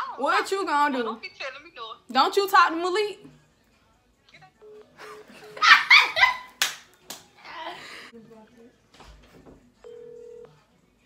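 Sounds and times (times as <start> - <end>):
girls laughing: 5.0 - 6.6.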